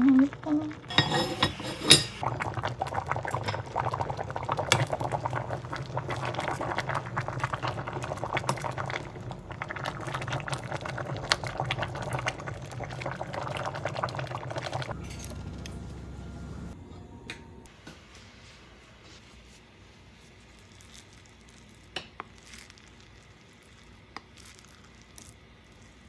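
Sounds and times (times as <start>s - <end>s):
stew bubbling in a pot: 0.0s - 15.0s, 20.4s - 26.0s
low hum: 14.5s - 17.7s.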